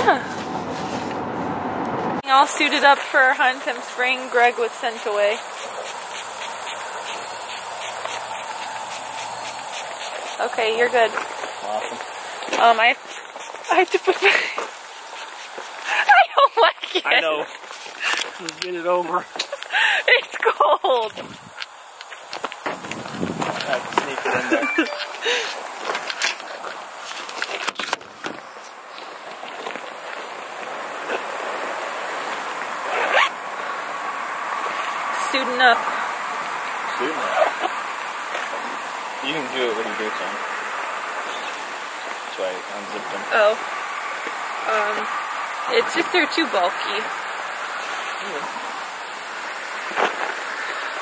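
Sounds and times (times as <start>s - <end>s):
spray hissing: 2.2s - 26.2s, 34.7s - 51.0s
zipper: 32.9s - 33.4s.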